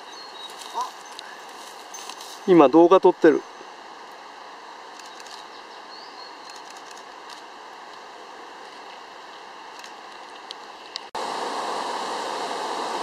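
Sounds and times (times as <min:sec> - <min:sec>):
faint outdoor background hiss: 0:00.0 - 0:13.0.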